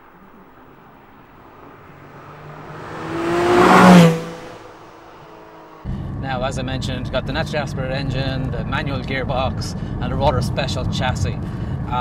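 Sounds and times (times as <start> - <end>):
car engine driving past: 0.0 - 6.2.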